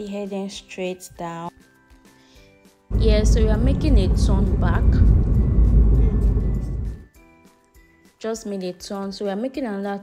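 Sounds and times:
faint background music: 0.0s - 10.0s
car road and wind noise: 2.9s - 7.0s.

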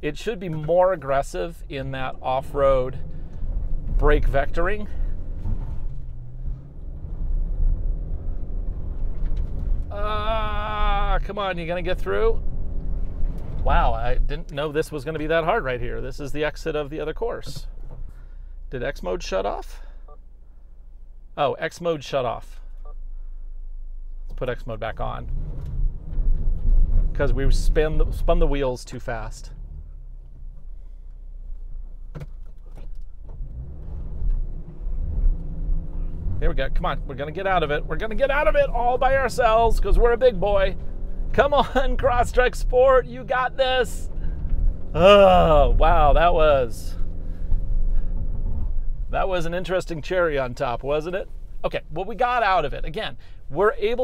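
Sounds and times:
car engine working hard: 0.0s - 16.7s, 23.0s - 54.0s.

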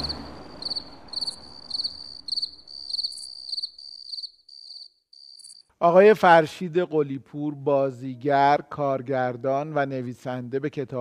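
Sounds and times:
cricket chirping: 0.0s - 5.7s.

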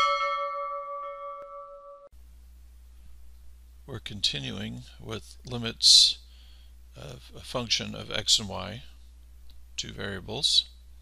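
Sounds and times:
bell chime ringing: 0.0s - 2.1s.

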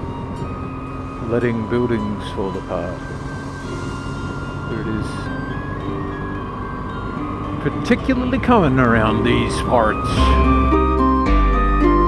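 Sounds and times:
background music held notes: 0.0s - 12.0s
motorcycle engine rumble: 0.0s - 12.0s.

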